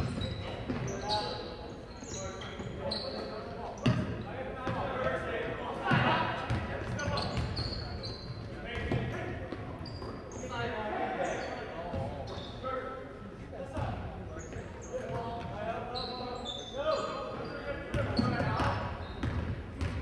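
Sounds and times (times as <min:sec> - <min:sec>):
sneaker squeaks: 0:00.0 - 0:04.8, 0:05.9 - 0:13.0, 0:13.7 - 0:20.0
voices echoing in hall: 0:00.0 - 0:20.0
basketball bouncing on court: 0:03.8 - 0:04.8, 0:05.9 - 0:07.6, 0:17.9 - 0:20.0.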